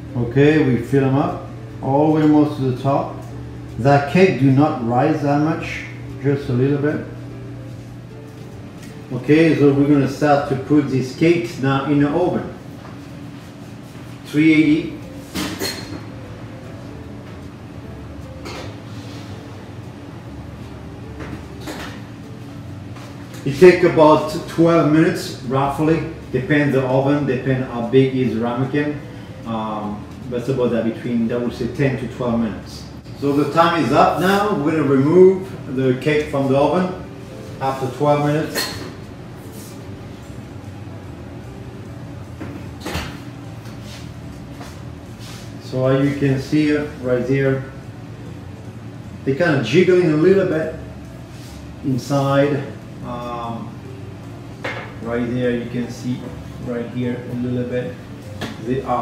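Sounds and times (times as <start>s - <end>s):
steady low hum: 0.0s - 59.0s.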